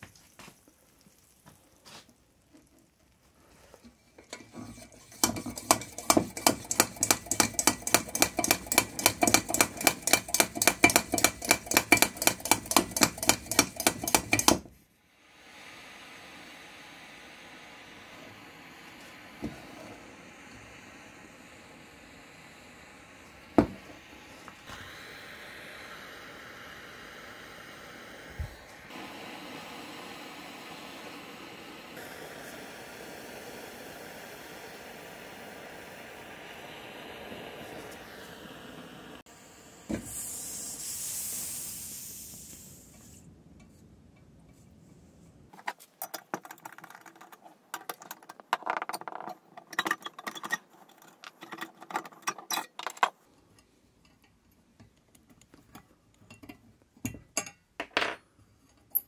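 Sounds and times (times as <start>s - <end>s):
air hissing from tank: 3.4s - 43.3s
blowlamp burning with rushing noise: 4.2s - 43.3s.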